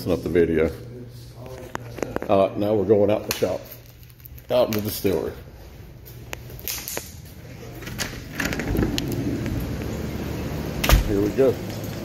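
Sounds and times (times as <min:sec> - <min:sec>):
rushing crackling still: 0:08.3 - 0:10.2.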